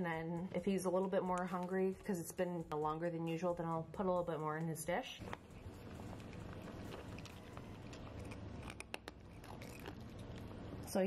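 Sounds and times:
cat crunching dry kibble: 5.2s - 10.9s.

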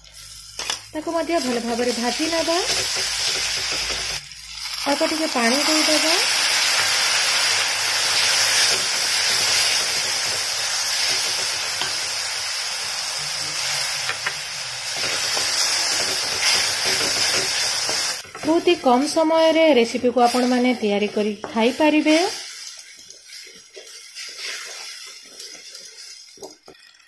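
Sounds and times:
paste sizzling in hot oil: 0.0s - 27.0s
wooden spatula stirring: 20.0s - 27.0s.

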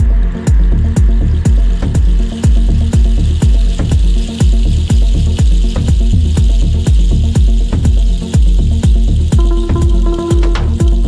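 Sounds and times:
house music: 0.0s - 11.0s.

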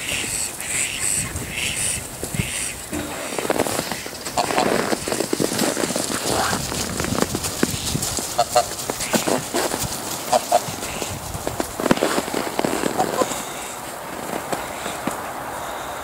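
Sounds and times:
geese honking: 0.0s - 16.0s.

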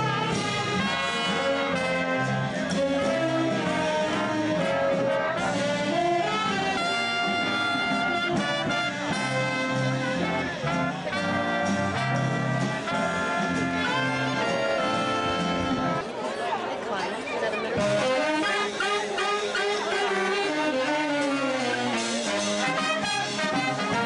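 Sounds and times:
big band playing swing: 0.0s - 16.2s, 17.6s - 24.0s.

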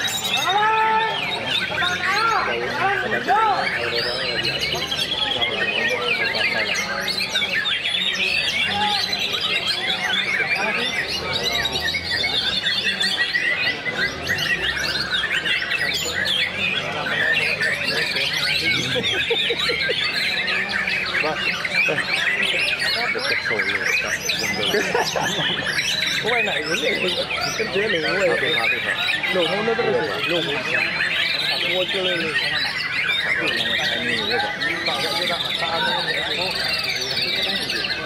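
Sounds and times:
birds singing whistles and trills: 0.0s - 38.0s
murmur of human voices: 0.0s - 38.0s.

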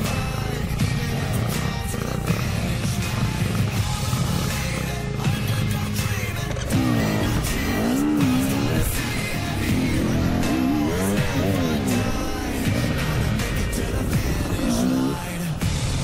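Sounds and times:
background music: 0.0s - 16.0s
dirt bike engine revving: 0.0s - 16.0s.

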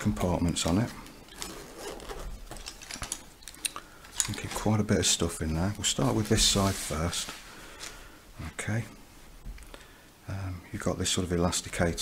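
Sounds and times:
zip rasping open: 1.3s - 2.9s.

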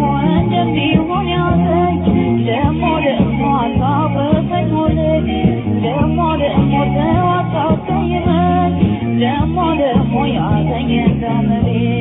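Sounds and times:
band with moving bass line: 0.0s - 12.0s.

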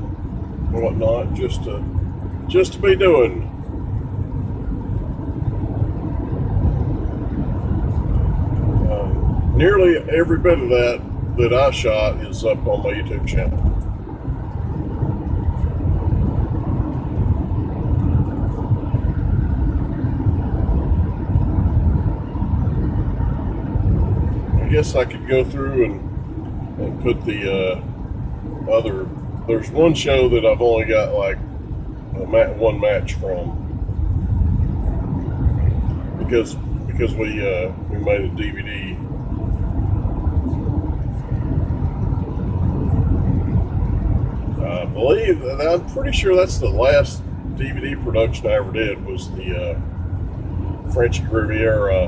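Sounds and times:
car engine and road noise: 0.0s - 52.0s.

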